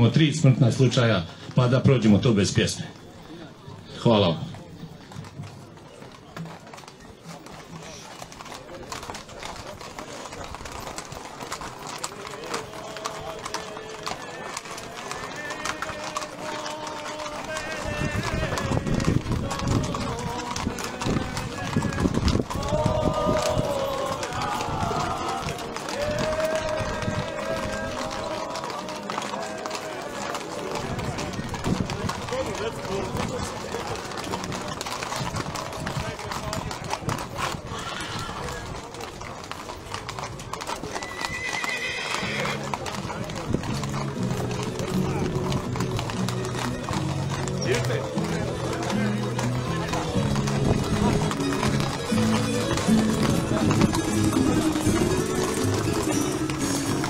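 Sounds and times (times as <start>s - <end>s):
horse hooves clip-clopping on asphalt: 0.0s - 57.0s
horse whinnying: 7.8s - 30.2s, 37.4s - 38.8s, 40.2s - 57.0s.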